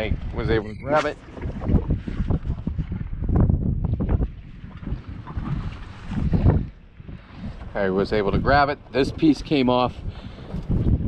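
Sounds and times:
gusty wind buffeting microphone: 0:00.0 - 0:11.0
water washing against boat hull: 0:00.0 - 0:11.0.

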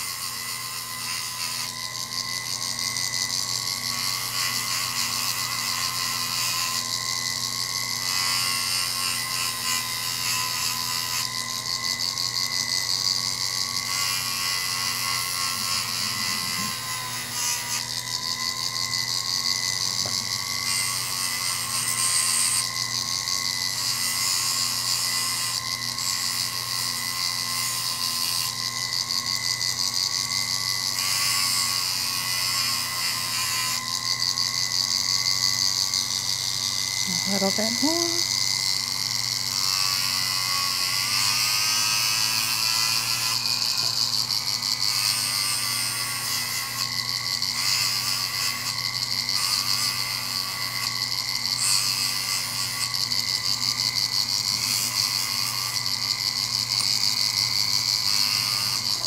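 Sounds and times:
rotary tool whining: 0:00.0 - 0:59.0.

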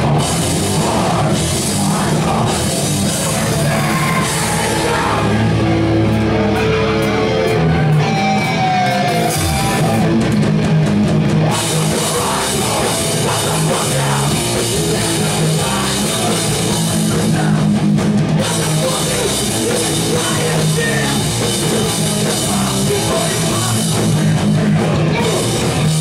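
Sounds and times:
live punk band playing: 0:00.0 - 0:26.0.

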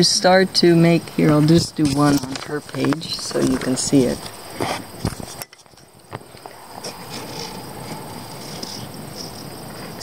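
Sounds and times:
high-pitched insect trill: 0:00.0 - 0:10.0.

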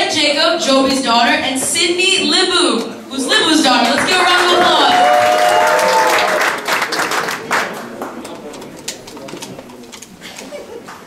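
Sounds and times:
scattered claps: 0:03.8 - 0:09.4
audience murmuring: 0:06.0 - 0:11.0.

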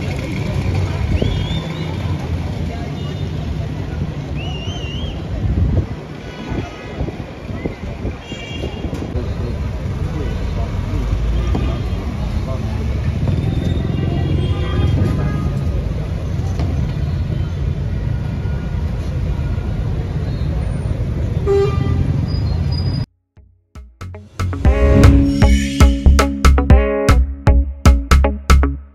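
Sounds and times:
street traffic rumble: 0:00.0 - 0:23.1.

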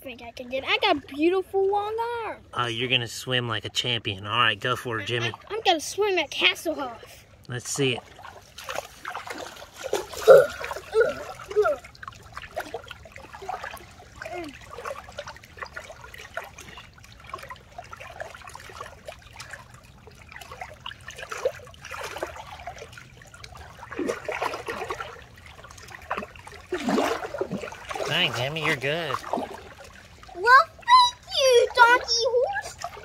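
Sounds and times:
shallow water splashing: 0:00.0 - 0:33.0.

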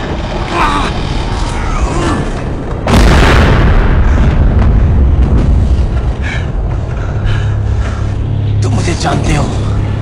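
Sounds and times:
low rumble: 0:00.0 - 0:10.0
loud explosion blast: 0:02.5 - 0:06.0.

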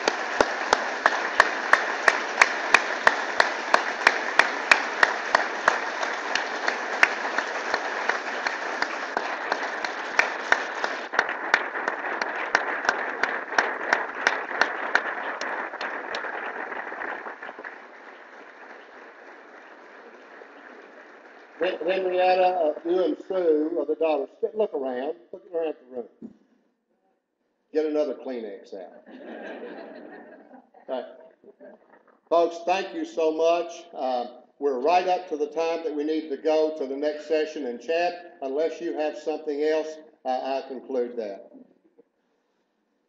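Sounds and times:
close sharp claps: 0:00.0 - 0:23.8
audience applauding: 0:00.0 - 0:24.2.

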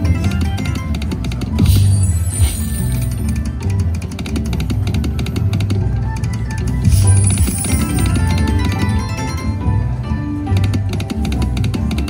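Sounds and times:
slot machine music with drums: 0:00.0 - 0:12.0.

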